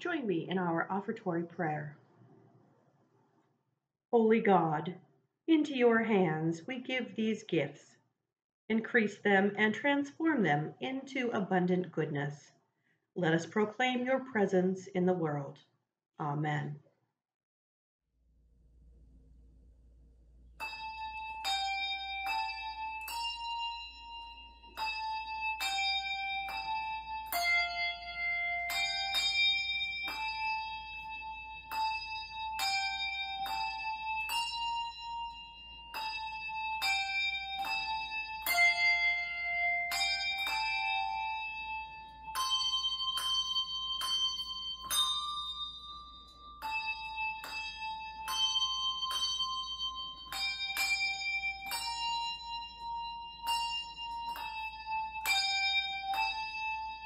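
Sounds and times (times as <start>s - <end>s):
handbells ringing a slow melody: 20.6s - 57.0s.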